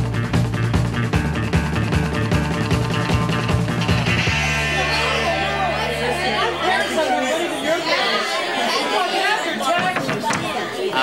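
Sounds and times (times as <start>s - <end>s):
rock music: 0.0s - 6.4s
students chattering: 4.2s - 11.0s.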